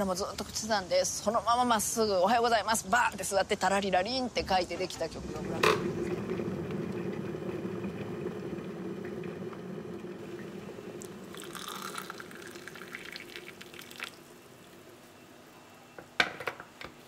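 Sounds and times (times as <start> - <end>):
kettle water rumbling: 4.5 - 15.1.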